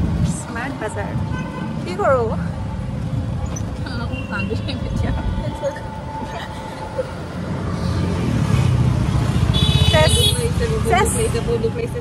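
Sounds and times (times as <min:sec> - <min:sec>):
auto-rickshaw engine rumble: 0:00.0 - 0:12.0.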